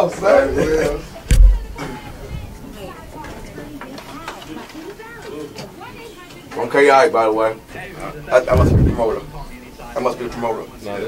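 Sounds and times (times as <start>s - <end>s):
muffled background voices: 0.0s - 11.0s.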